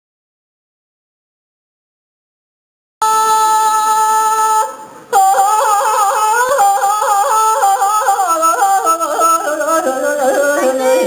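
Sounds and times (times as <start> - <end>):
man singing with yodel-like flips: 3.1 - 11.0.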